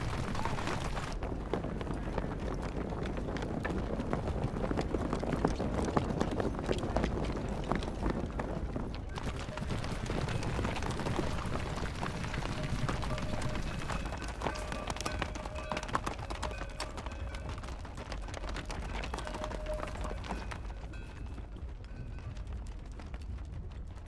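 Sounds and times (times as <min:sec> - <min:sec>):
horse hooves galloping: 0:00.0 - 0:24.0.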